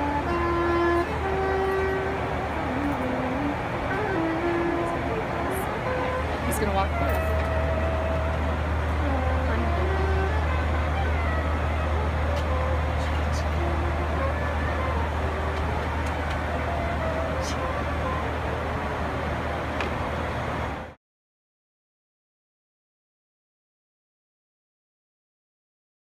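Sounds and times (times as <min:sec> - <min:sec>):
passengers talking: 0:00.0 - 0:20.4
airliner cabin hum: 0:00.0 - 0:20.9.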